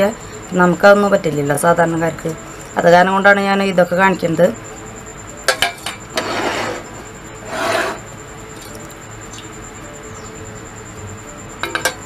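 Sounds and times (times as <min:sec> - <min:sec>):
cake pan scraping on glass plate: 0:06.1 - 0:08.1.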